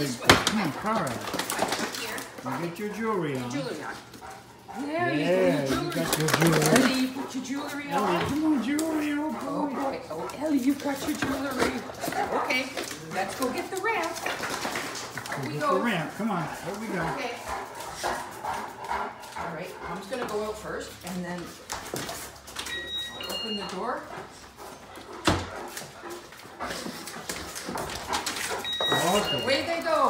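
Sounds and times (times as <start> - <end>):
woman talking: 1.8 - 2.4, 4.7 - 14.3, 16.8 - 17.6, 19.4 - 21.6, 23.2 - 24.2, 29.3 - 30.0
dogs whining: 3.4 - 13.2, 22.4 - 25.8, 27.5 - 30.0
dogs whining and whimpering: 7.7 - 8.7, 28.2 - 30.0.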